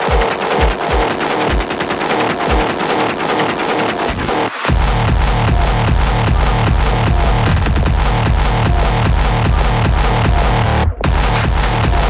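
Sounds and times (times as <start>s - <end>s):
deep kick drums: 4.7s - 12.0s.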